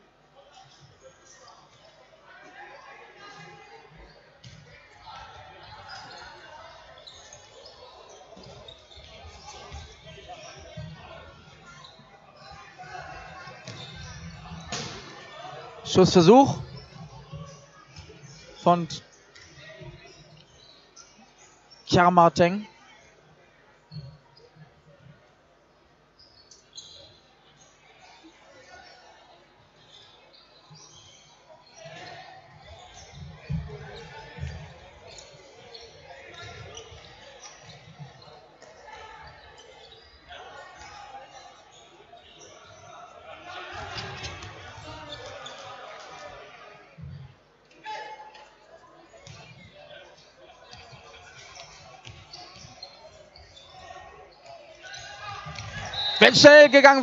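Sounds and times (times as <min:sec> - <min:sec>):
voices in echoing hall: 0:00.0 - 0:57.0
hall background noise: 0:55.0 - 0:57.0.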